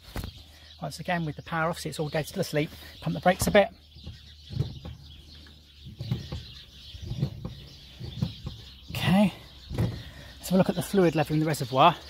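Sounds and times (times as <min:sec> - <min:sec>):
brake pedal thumps and knocks: 0:03.3 - 0:10.2.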